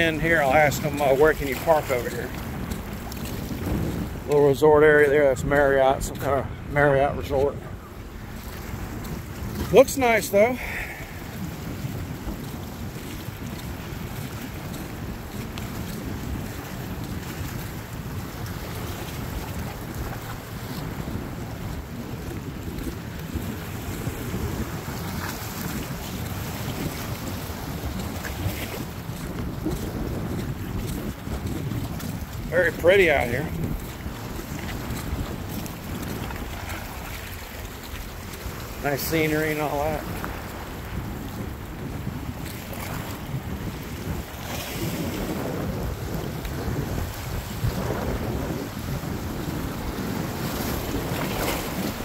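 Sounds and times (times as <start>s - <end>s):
water washing against boulders: 0.0s - 6.4s, 8.4s - 52.0s
wind buffeting microphone: 0.0s - 52.0s.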